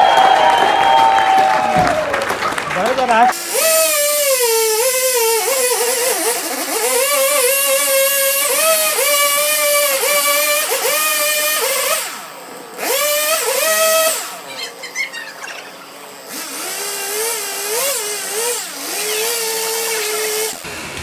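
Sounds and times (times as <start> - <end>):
chainsaw engine revving: 0.8 - 21.0.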